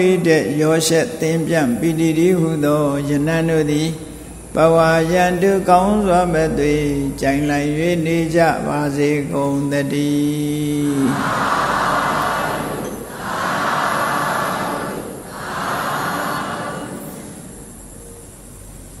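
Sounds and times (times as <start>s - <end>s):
monk chanting: 0.0s - 17.4s
audience answering in unison: 11.0s - 17.4s.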